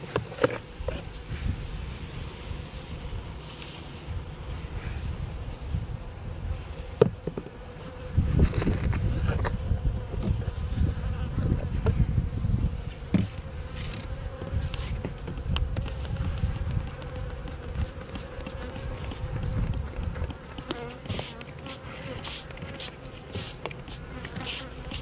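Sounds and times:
bees buzzing: 0:06.4 - 0:25.0.

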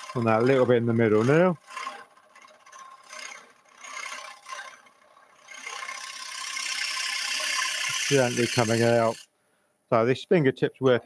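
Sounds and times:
scraper cutting wood on lathe: 0:00.0 - 0:09.3.

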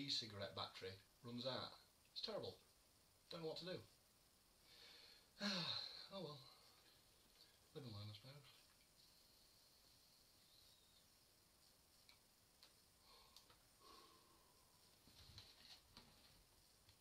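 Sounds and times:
soft breathing: 0:04.5 - 0:07.8, 0:12.8 - 0:16.4.

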